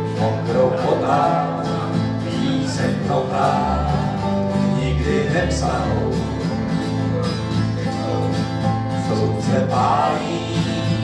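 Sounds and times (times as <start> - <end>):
acoustic country band music: 0.0 - 11.0.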